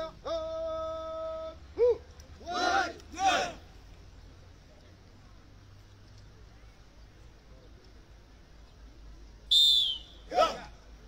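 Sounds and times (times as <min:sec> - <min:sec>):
whistle blast: 0:09.5 - 0:10.3.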